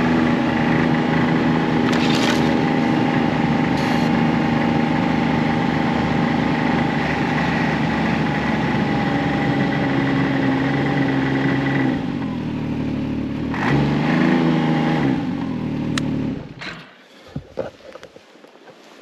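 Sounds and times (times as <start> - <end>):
snowmobile engine running: 0.0 - 16.6.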